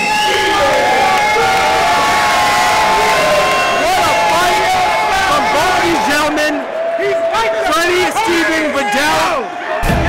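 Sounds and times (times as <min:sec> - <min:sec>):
crowd cheering and shouting: 0:00.0 - 0:10.0.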